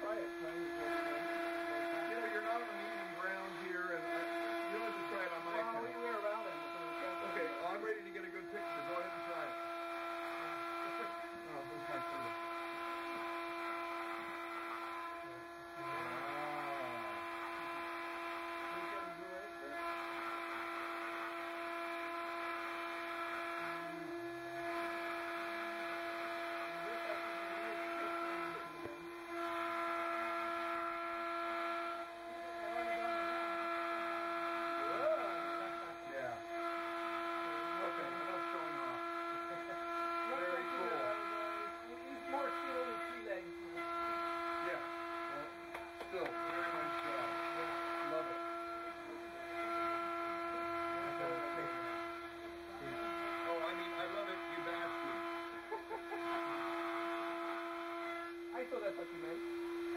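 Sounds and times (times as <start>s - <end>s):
faint conversation: 0.0s - 17.3s, 18.1s - 20.2s, 26.5s - 29.4s, 31.8s - 59.9s
steady electrical hum: 0.0s - 59.9s.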